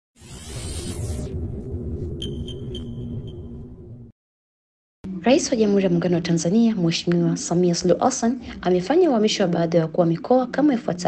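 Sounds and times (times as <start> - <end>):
low rumbling drone: 0.3 - 4.1
high sonar-like ping: 2.0 - 4.1.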